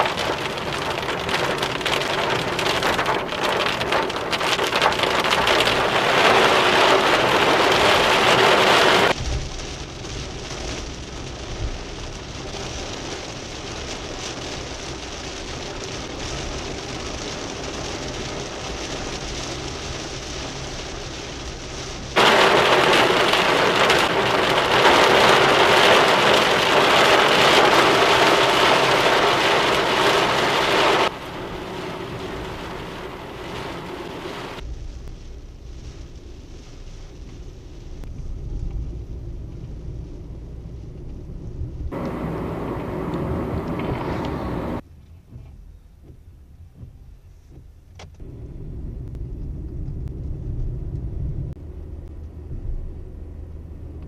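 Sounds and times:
heavy rain on car roof: 0:00.0 - 0:44.8
road noise in moving car: 0:00.0 - 0:54.0.

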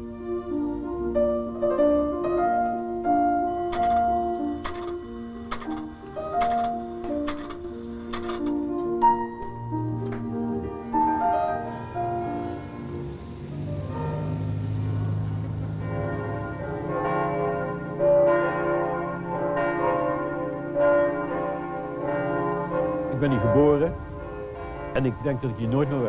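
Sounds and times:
church bells ringing: 0:00.0 - 0:26.0.

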